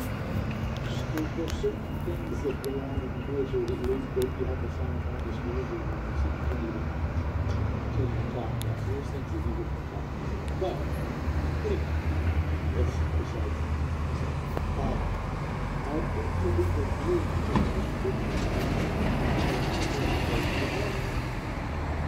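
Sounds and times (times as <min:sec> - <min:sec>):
low city rumble: 0:00.0 - 0:22.0.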